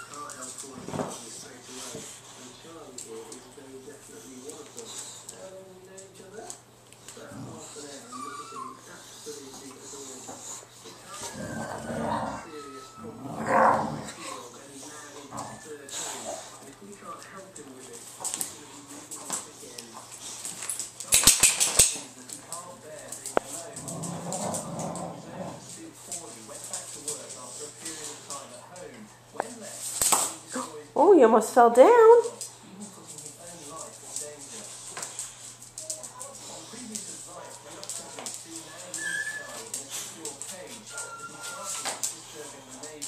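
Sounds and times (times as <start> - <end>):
dog whining: 8.0 - 8.9, 11.1 - 14.2.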